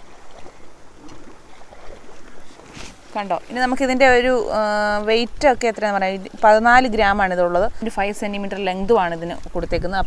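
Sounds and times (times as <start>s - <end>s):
wind buffeting microphone: 0.0s - 10.0s
short rustle: 1.5s - 3.6s.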